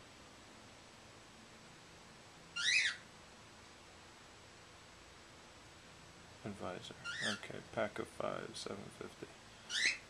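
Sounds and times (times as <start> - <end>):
bird whistled chirp: 2.6 - 3.0, 9.7 - 10.0.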